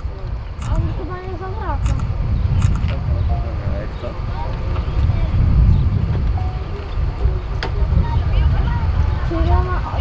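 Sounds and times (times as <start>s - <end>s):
people talking: 0.0s - 10.0s
steady low rumble: 0.0s - 10.0s.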